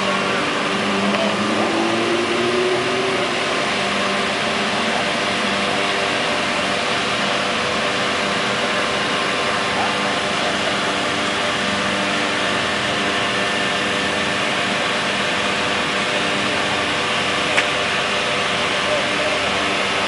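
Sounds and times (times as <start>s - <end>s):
vehicle engine running: 0.0s - 20.0s.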